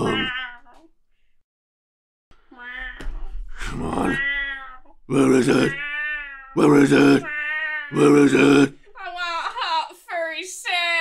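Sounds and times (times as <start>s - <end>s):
cartoon cat meowing: 0.0s - 0.9s, 2.6s - 3.3s, 4.0s - 4.9s, 5.7s - 8.1s.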